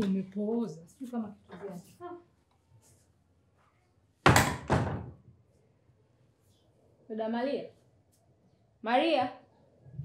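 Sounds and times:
wooden door banging: 0:04.3 - 0:05.2.

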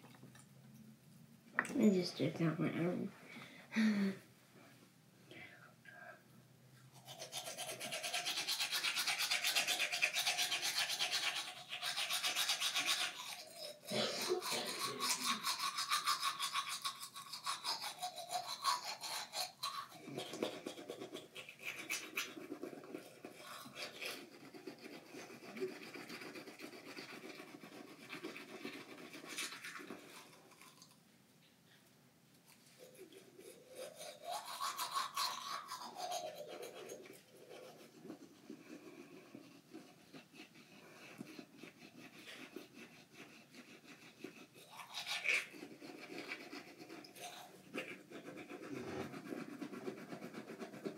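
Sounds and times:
toothbrush scrubbing teeth: 0:06.9 - 0:31.0, 0:32.5 - 0:50.9.

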